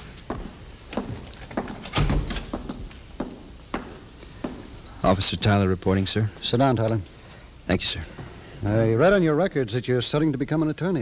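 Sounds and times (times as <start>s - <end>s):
footsteps on a hard floor: 0.0s - 1.8s, 2.4s - 4.7s
door shutting with a thump: 1.9s - 2.6s.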